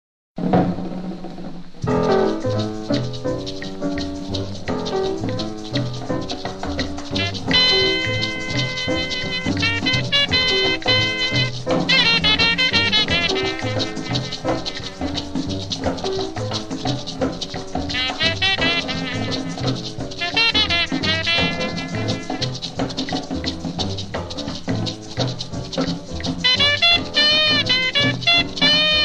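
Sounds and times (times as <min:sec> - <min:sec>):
maracas shaking: 0:01.7 - 0:29.0
swing band playing blues: 0:01.9 - 0:29.0.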